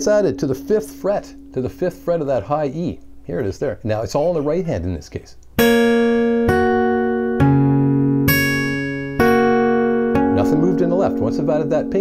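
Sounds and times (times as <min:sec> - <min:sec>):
acoustic guitar notes plucked: 0:00.0 - 0:04.8, 0:05.4 - 0:12.0.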